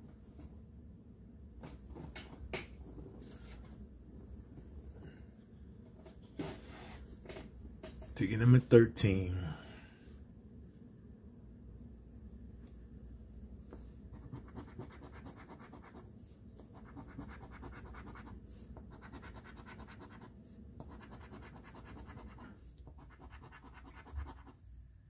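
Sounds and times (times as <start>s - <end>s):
coin scratching lottery ticket: 20.9s - 22.4s, 23.0s - 24.5s.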